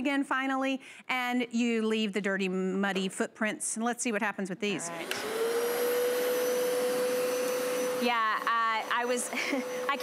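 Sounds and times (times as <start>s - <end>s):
carpet cleaner motor whine: 5.0s - 9.9s.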